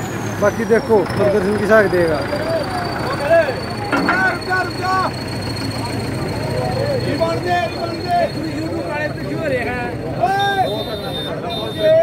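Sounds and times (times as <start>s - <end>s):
tractor diesel engine drone: 0.0s - 10.2s.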